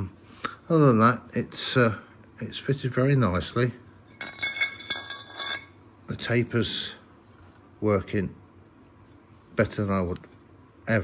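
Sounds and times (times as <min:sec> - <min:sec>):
metal scraping with ringing clinks: 0:04.1 - 0:05.8.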